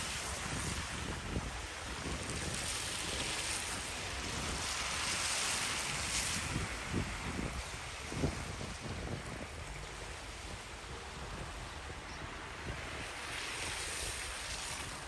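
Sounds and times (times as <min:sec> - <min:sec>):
wind gusting across microphone: 0:00.0 - 0:15.0.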